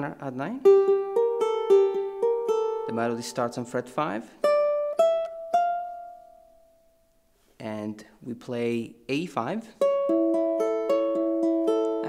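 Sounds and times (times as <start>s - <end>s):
ukulele picked fingerstyle: 0.4s - 6.9s, 9.7s - 12.0s.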